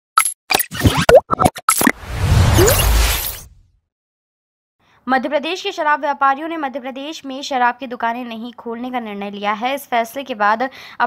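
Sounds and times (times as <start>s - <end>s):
synthetic pops and plops: 0.6s - 2.0s.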